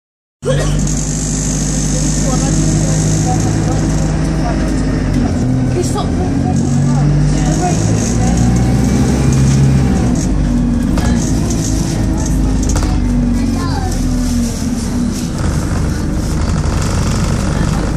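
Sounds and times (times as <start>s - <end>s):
bus diesel engine: 0.4s - 17.9s
road noise: 0.4s - 17.9s.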